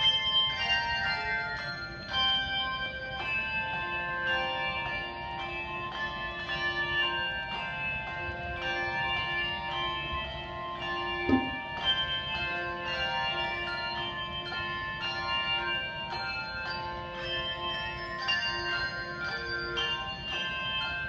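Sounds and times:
handbell choir playing: 0.0 - 21.0.

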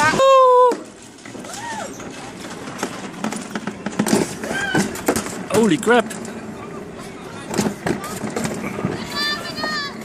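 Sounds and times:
sled clacking and knocking: 0.0 - 10.0
sled running down metal track: 0.0 - 10.0.

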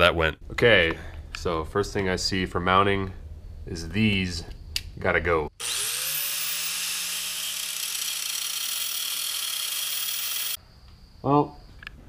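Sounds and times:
power tool grinding metal: 5.6 - 10.6.

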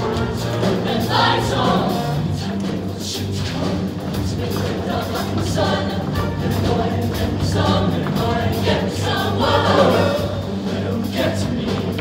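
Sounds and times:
choir singing with band: 0.0 - 12.0.

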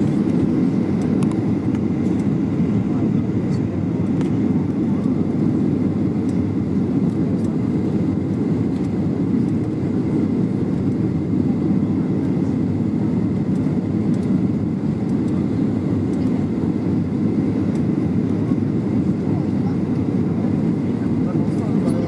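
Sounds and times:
airplane cabin roar: 0.0 - 22.0.

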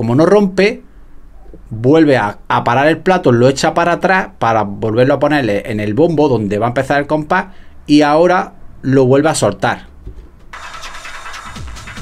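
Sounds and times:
techno music from vinyl: 10.5 - 12.0
kick drum: 11.4 - 12.0.

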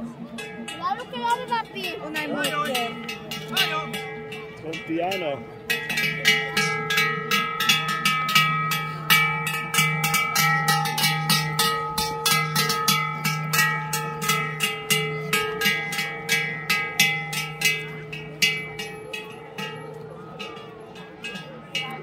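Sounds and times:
cowbell clanging: 0.0 - 22.0.

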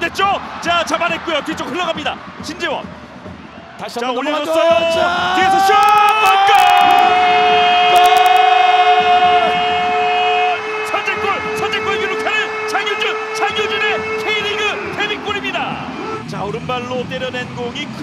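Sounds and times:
stadium horns held notes: 6.6 - 16.3
short rising and falling horn notes: 6.8 - 16.3.

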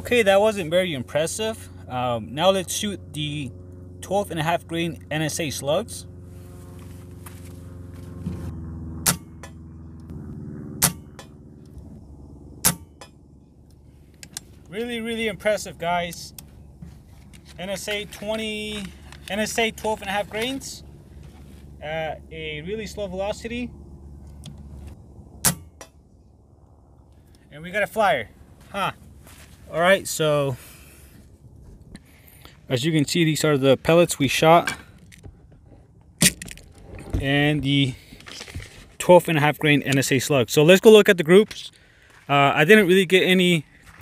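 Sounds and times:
steady low hum: 0.0 - 44.0
air rifle shots: 10.8 - 11.4.

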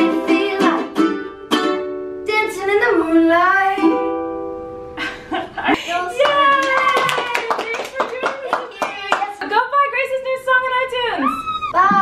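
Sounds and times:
people clapping: 5.8 - 9.7.

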